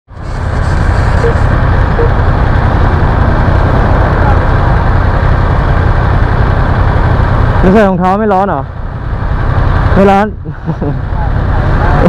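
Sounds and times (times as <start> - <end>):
motorcycle engine idling: 0.1 - 12.0.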